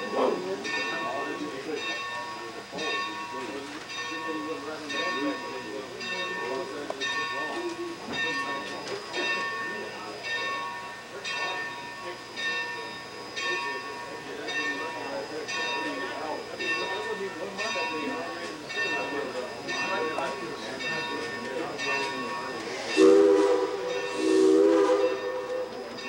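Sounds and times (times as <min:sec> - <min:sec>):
locomotive bell ringing: 0:00.0 - 0:26.0.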